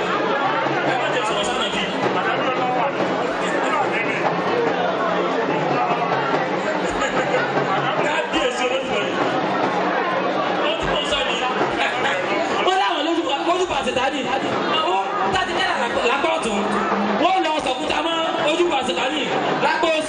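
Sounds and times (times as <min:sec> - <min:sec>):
crowd chatter: 0:00.0 - 0:20.0
man talking over loudspeaker: 0:00.9 - 0:04.3, 0:06.8 - 0:09.2, 0:10.6 - 0:20.0.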